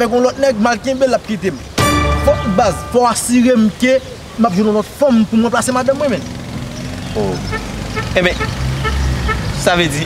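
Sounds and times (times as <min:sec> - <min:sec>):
vehicle engine rumbling: 0:01.6 - 0:10.0.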